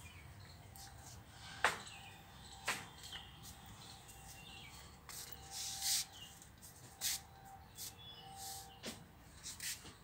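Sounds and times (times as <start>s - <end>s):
faint bird chirp: 0.0s - 9.0s
rustling and scraping: 5.1s - 10.0s.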